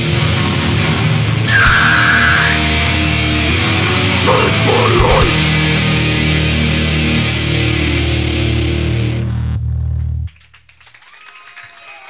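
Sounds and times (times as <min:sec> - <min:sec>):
crowd shouts: 0:01.5 - 0:02.8, 0:11.0 - 0:12.0
crowd clapping: 0:09.9 - 0:12.0.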